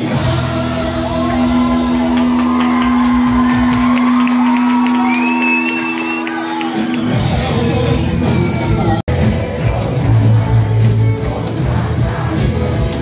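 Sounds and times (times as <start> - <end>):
live rock band holding a chord: 0.0 - 13.0
audience shouting and whooping: 0.8 - 9.3.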